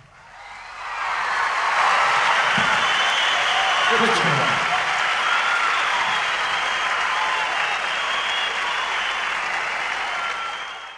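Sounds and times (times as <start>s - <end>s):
audience applauding: 0.2s - 10.9s.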